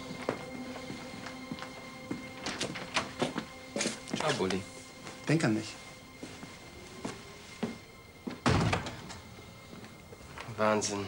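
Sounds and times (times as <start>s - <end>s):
door shutting with a thud: 8.4s - 9.2s.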